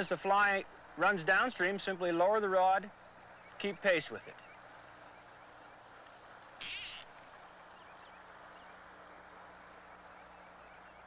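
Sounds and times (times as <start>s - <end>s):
outdoor hiss: 0.0s - 11.0s
high buzzy animal call: 6.6s - 7.2s.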